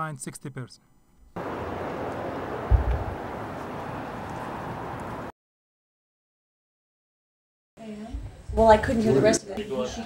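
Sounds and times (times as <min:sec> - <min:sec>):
steady background noise: 0:01.4 - 0:05.3
short deep thump: 0:02.5 - 0:03.4.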